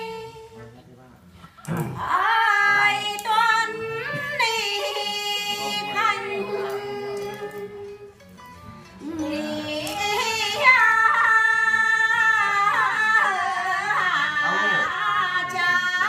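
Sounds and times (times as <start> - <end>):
women singing unaccompanied folk song: 0.0 - 0.6, 1.9 - 8.2, 9.0 - 16.0.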